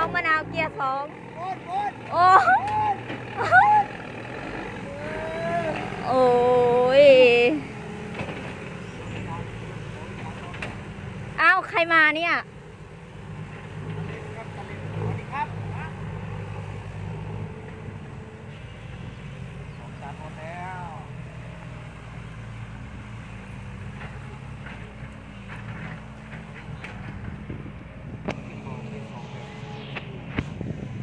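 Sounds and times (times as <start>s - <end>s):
distant truck engine labouring: 0.0s - 31.0s.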